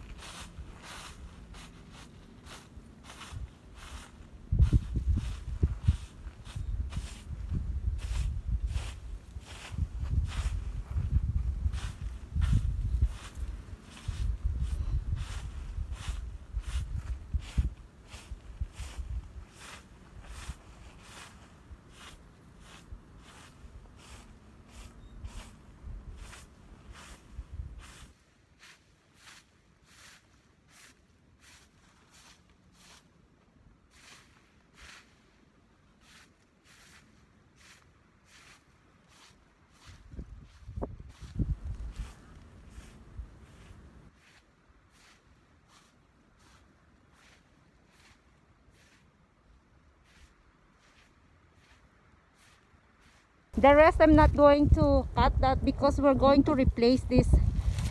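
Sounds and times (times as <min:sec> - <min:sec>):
broom sweeping dry leaves: 0:00.0 - 0:53.8, 0:57.1 - 0:57.9
low rumble on microphone: 0:01.5 - 0:19.4, 0:39.9 - 0:44.0, 0:56.6 - 0:57.9.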